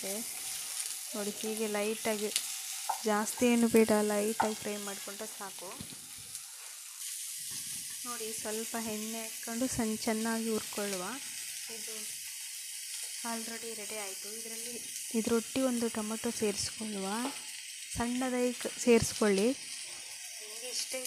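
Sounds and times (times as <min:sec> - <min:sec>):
onions sizzling in oil: 0:00.0 - 0:21.0.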